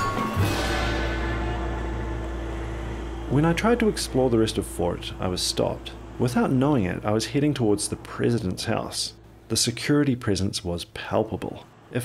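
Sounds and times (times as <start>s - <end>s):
background music with low drone: 0.0s - 9.3s
sustained tone: 0.0s - 9.4s.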